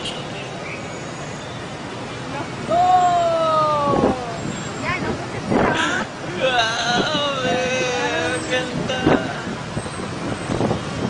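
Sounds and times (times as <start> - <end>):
motorbike and car traffic: 0.0 - 11.0.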